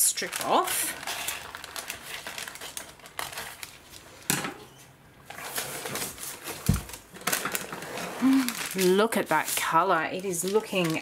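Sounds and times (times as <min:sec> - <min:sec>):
paper rustling and crinkling: 0:00.2 - 0:04.3, 0:05.2 - 0:11.0.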